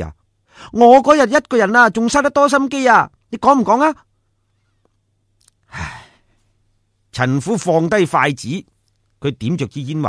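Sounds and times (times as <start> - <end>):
person sighing: 5.7 - 6.2.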